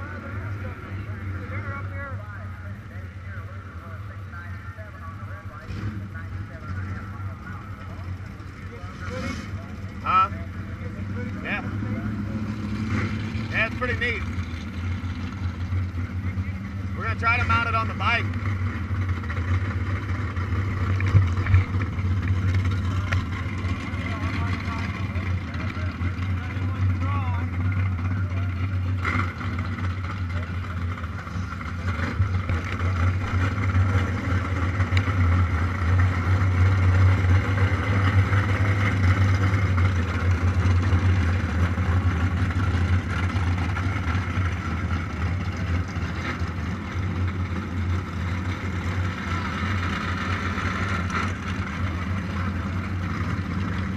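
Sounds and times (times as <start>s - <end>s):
motorcycle engine idling: 0.0s - 53.9s
voices: 0.0s - 53.9s.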